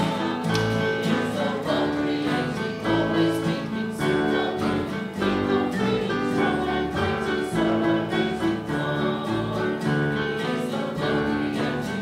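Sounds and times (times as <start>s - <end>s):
choir and congregation singing: 0.0s - 12.0s.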